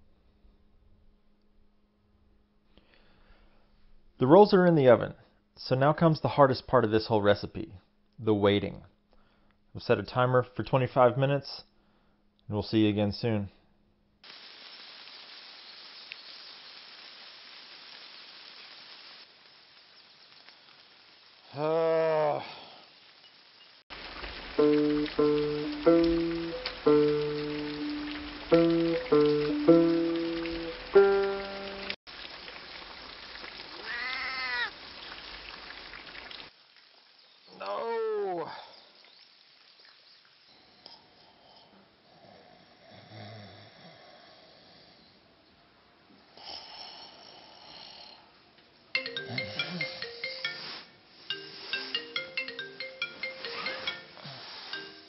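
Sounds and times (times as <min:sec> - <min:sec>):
low steady background sound: 0:22.4 - 0:32.0, 0:48.1 - 0:55.0
music of held notes: 0:24.5 - 0:32.0, 0:49.0 - 0:55.0.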